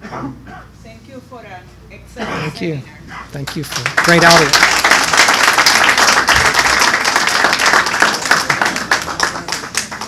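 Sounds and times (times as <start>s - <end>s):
audience applauding: 3.4s - 10.0s.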